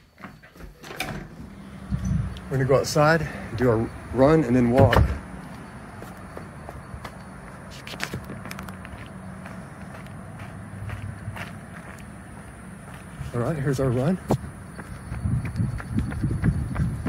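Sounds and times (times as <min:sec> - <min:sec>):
steady low hum: 0:01.2 - 0:07.7
footsteps on concrete: 0:04.6 - 0:17.0.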